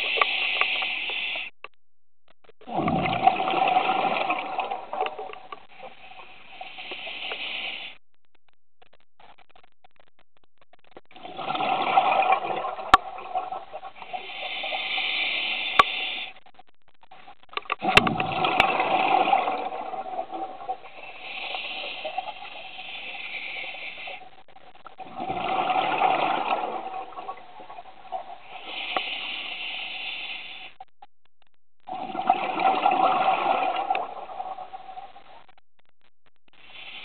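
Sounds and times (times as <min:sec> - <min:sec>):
hissing regulator inhale: 0:00.0 - 0:01.5, 0:06.2 - 0:08.0, 0:14.0 - 0:16.4, 0:21.0 - 0:24.3, 0:28.4 - 0:30.8, 0:36.6 - 0:37.0
diver exhaling bubbles underwater: 0:02.6 - 0:05.9, 0:11.1 - 0:16.2, 0:17.8 - 0:23.8, 0:25.0 - 0:29.3, 0:31.9 - 0:34.8.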